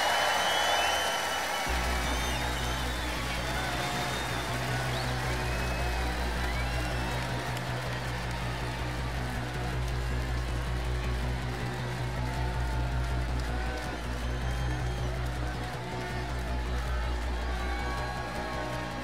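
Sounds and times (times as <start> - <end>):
faint crowd: 0.0 - 19.0.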